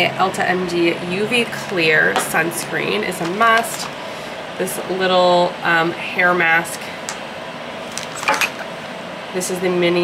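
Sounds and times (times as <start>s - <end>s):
plastic bottles handled: 7.9s - 8.7s.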